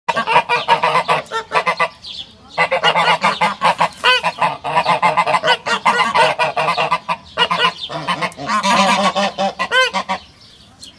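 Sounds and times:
geese honking: 0.1 - 10.4.

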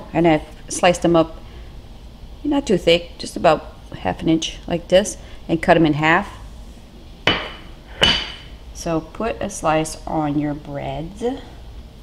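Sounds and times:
kitchenware clinking: 7.3 - 8.6.

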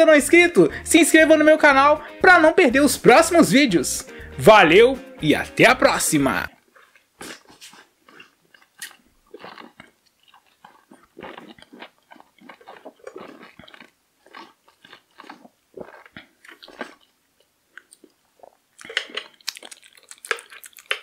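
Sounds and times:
swallowing: 6.5 - 17.1, 17.7 - 21.0
slurping through tubing: 6.6 - 13.9.

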